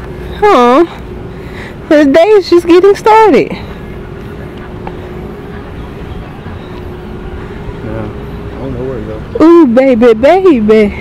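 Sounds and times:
distant engine rumble: 0.0 - 11.0
faint constant hum: 0.0 - 11.0.

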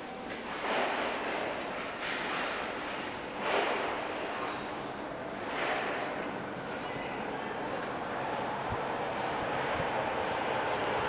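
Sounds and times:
steady background hum: 0.0 - 11.0
subway train whooshing: 0.4 - 11.0.

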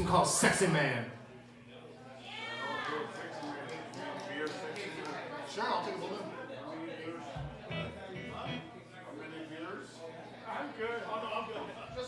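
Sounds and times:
room chatter: 0.0 - 12.0
blues band playing: 7.4 - 8.7.

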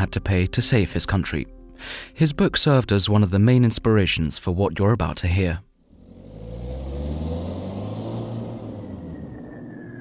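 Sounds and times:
faint falling tone: 8.2 - 10.0.

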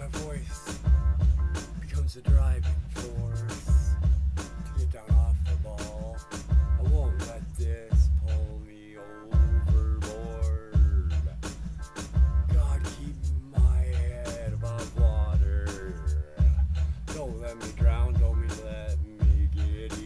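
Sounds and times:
lead vocal singing: 0.0 - 0.8, 6.8 - 11.4, 12.4 - 20.0
heavy pulsing bass beat: 0.0 - 20.0.

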